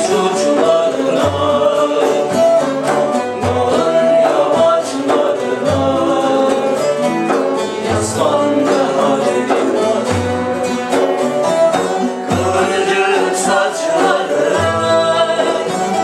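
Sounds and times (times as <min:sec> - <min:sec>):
frame drum strokes: 0:00.0 - 0:16.0
lutes playing: 0:00.0 - 0:16.0
men singing together: 0:00.0 - 0:16.0
reed flute: 0:00.0 - 0:16.0.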